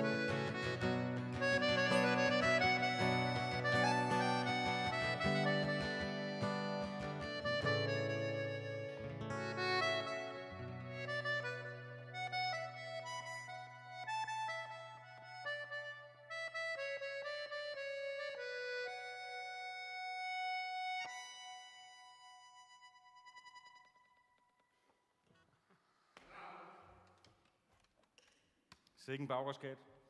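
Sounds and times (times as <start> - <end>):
accordion playing slow melody: 0.0 - 24.5.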